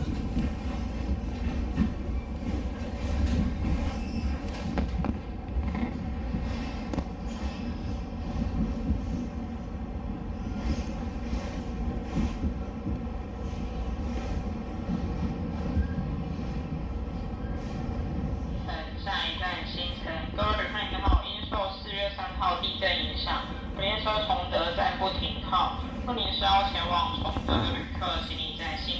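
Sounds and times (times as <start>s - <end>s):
train wheels clicking on rails: 0.0s - 9.3s, 10.4s - 16.8s
electric train rumbling: 0.0s - 28.9s.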